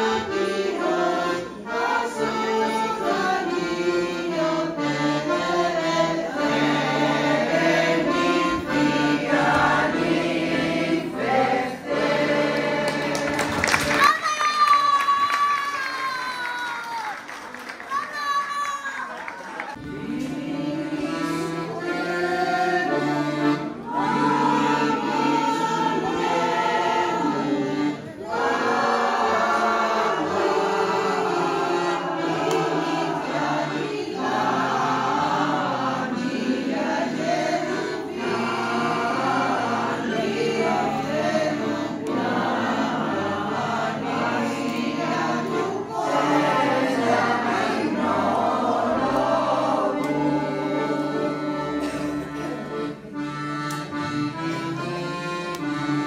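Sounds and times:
women's choir singing: 0.0 - 14.0, 19.7 - 55.9.

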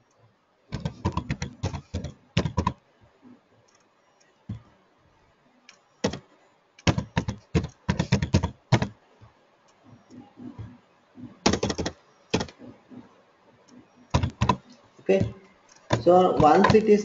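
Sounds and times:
computer keyboard typing: 0.7 - 2.8, 5.7 - 9.0, 9.9 - 17.0.

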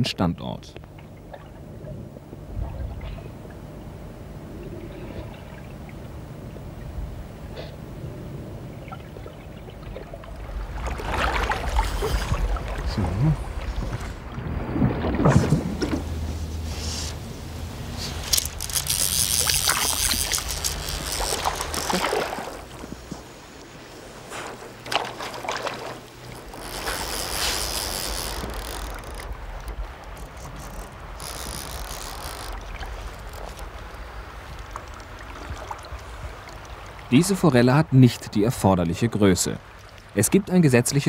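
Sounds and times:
fish splashing at the surface: 10.0 - 12.9, 18.4 - 23.2, 24.3 - 27.9
stream rushing: 10.1 - 41.0.

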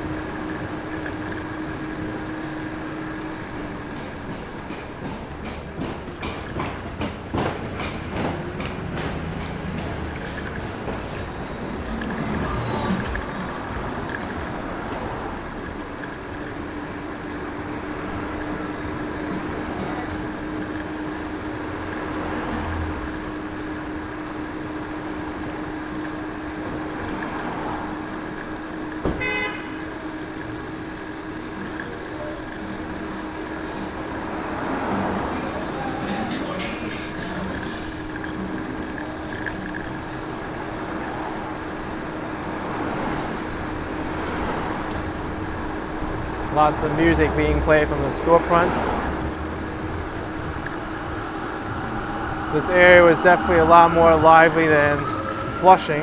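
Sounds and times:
street traffic: 0.0 - 56.0
horn beep: 29.2 - 30.0.

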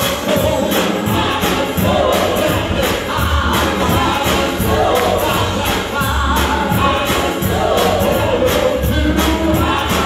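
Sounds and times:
gospel singing by several voices: 0.0 - 10.0
instrumental backing with steady beat: 0.0 - 10.0.

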